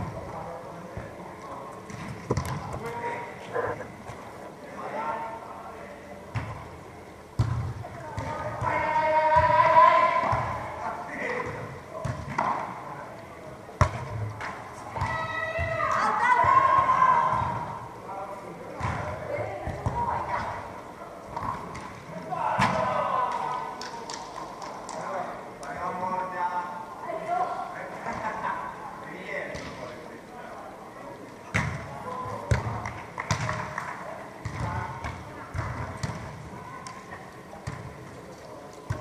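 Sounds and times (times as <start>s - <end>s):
players calling and shouting: 0.0s - 39.0s
volleyball struck by hand: 31.5s - 31.8s, 32.5s - 36.3s.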